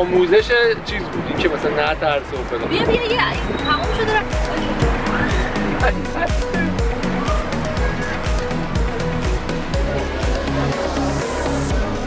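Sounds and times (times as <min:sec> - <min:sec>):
music with bass thumps: 0:00.0 - 0:12.0.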